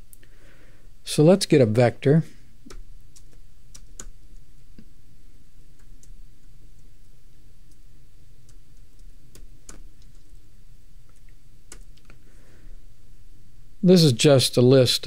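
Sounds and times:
low steady hum: 0.0 - 15.0.

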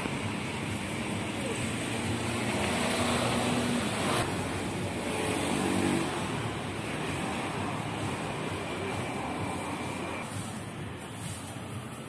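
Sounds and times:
vehicle engines passing: 0.0 - 12.0.

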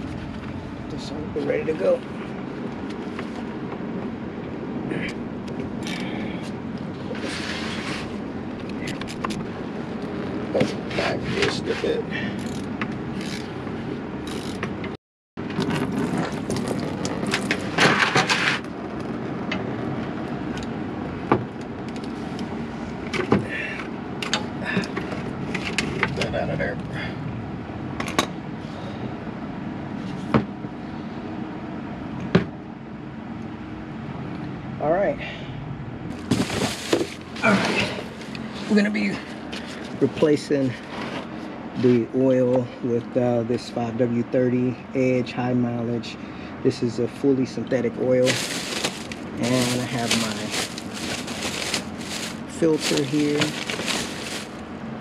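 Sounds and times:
steady background hum: 0.0 - 55.0.

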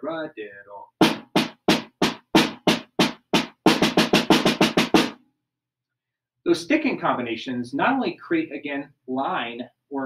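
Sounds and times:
damped snare drum strokes: 1.0 - 5.2.

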